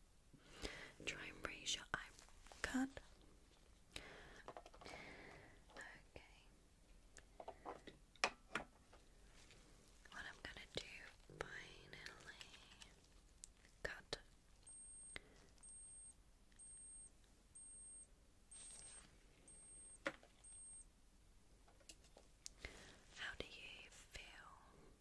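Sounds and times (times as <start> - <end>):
woman whispering: 1.0 - 3.2, 5.7 - 6.6, 10.1 - 13.0, 13.8 - 14.4, 23.1 - 24.9
high-pitched beeps: 14.7 - 20.8.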